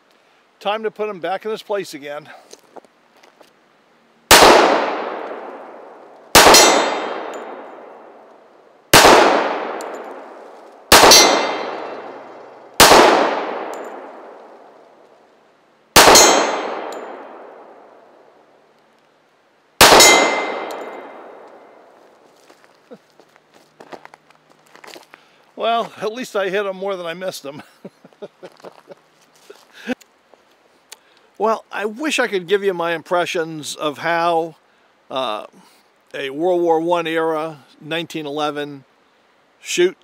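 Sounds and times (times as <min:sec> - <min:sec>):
pistol shots echoing: 0:04.3 - 0:08.2, 0:08.9 - 0:14.4, 0:16.0 - 0:18.0, 0:19.8 - 0:21.8
steel target plate ringing: 0:06.4 - 0:07.7, 0:11.0 - 0:12.0, 0:20.0 - 0:21.1.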